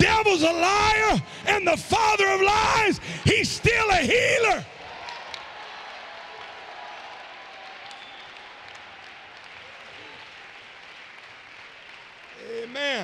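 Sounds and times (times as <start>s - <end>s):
congregation applauding: 0.0s - 13.0s.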